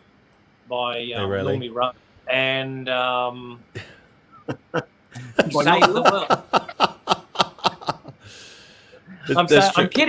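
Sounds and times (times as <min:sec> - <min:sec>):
person laughing: 0:03.8 - 0:08.2.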